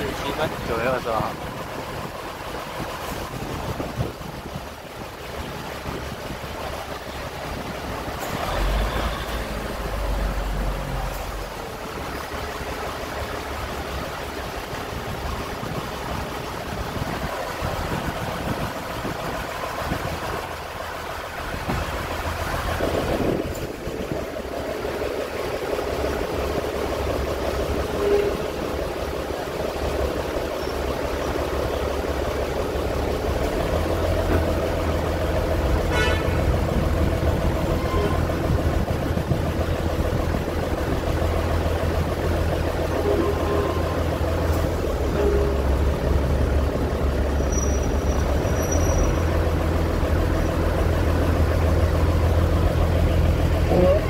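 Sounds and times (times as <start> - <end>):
diesel railcar engine drone: 0.0 - 54.0.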